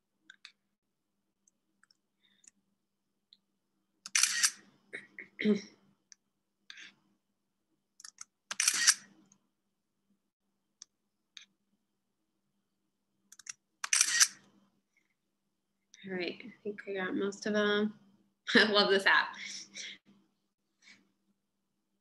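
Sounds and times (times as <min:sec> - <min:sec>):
screenshot shutter sound: 0:04.1 - 0:04.6, 0:08.0 - 0:09.1, 0:13.4 - 0:14.5
person clearing throat: 0:05.0 - 0:05.8.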